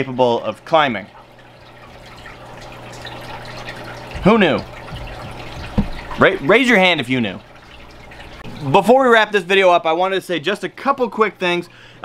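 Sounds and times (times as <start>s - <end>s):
aquarium water trickling: 0.0s - 12.0s.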